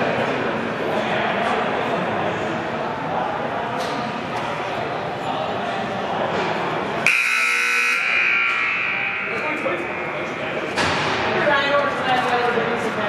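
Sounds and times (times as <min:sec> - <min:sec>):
scoreboard buzzer: 0:07.0 - 0:10.4.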